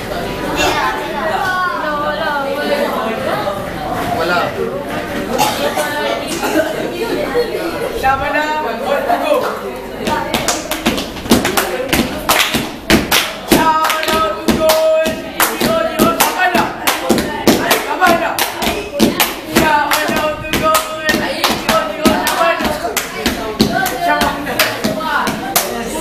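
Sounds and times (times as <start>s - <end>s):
children's voices: 0.0s - 26.0s
children clapping hands: 10.3s - 24.9s, 25.5s - 25.8s.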